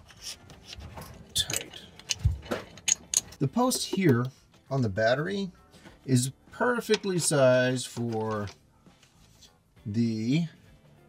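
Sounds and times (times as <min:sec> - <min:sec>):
cables rustling: 0:05.8 - 0:09.6.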